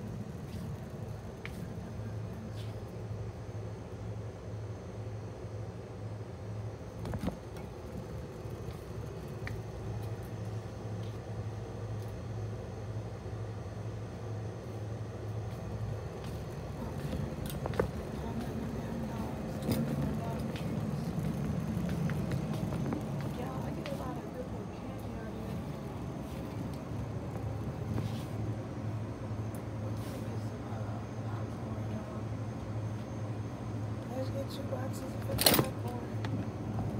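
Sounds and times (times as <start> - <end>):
muffled voices: 16.2 - 27.1
shopping cart rolling on concrete: 16.4 - 28.4
cart clicks and rattles: 17.0 - 24.4, 35.1 - 36.4.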